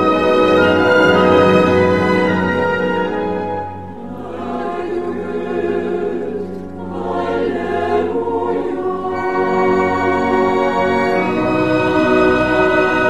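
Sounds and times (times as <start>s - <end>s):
opera chorus singing: 0.0s - 13.0s.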